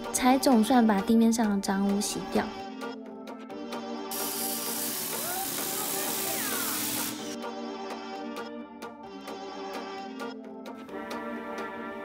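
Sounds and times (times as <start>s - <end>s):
background music: 0.0s - 12.0s
pressure washer spraying water: 4.1s - 7.4s.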